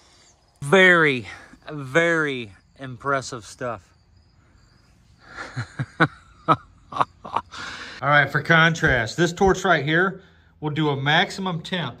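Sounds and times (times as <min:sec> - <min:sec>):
man chuckling breathily: 0:05.2 - 0:08.0
intake of breath: 0:07.5 - 0:08.0.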